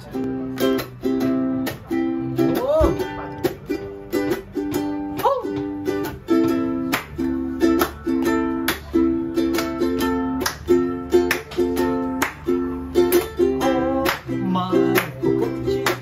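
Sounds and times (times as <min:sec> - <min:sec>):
ukulele strumming chords: 0:00.0 - 0:16.0
hand claps: 0:06.8 - 0:16.0.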